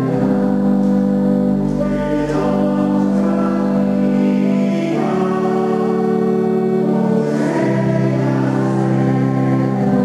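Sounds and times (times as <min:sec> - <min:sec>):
church choir singing: 0:00.0 - 0:10.0
pipe organ chords: 0:00.0 - 0:10.0.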